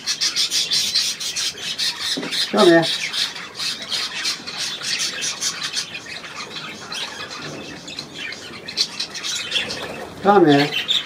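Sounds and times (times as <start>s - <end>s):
budgerigars chattering: 0.0s - 11.0s.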